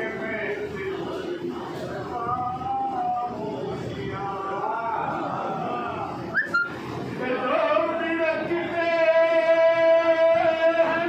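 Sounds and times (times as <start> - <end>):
man reciting over loudspeaker: 0.0 - 6.3, 7.0 - 11.0
high whistle-like chirp: 6.3 - 6.8.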